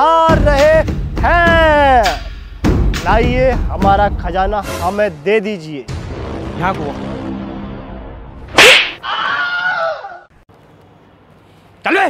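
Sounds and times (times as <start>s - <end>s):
low droning music: 5.8s - 8.5s
loud slap-like crack: 8.5s - 9.0s.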